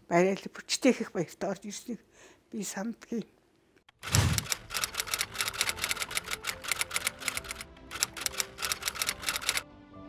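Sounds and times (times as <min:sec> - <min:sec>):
typewriter keys clacking: 0:04.1 - 0:09.6
quiet background music: 0:04.4 - 0:10.0.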